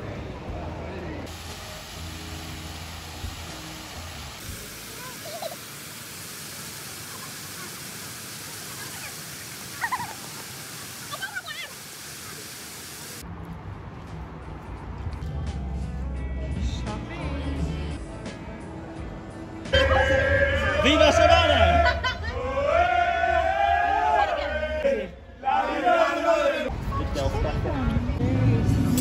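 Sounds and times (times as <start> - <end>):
street sound: 0.0 - 29.0
fountain water rushing: 1.3 - 13.2
voices calling: 4.6 - 13.2.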